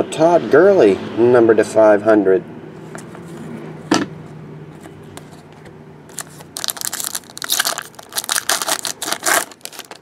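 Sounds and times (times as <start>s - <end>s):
wrapper tearing and crinkling: 6.1s - 10.0s.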